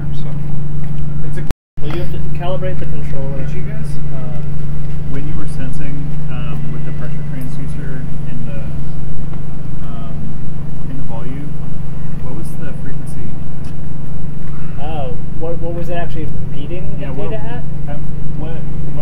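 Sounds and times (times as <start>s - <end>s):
indistinct talking: 0.0s - 19.0s
low mechanical hum: 0.0s - 19.0s.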